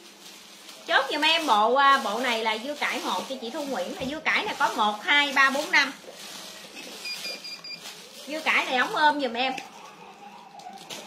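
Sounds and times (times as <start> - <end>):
fabric and plastic rustling: 0.0 - 11.0.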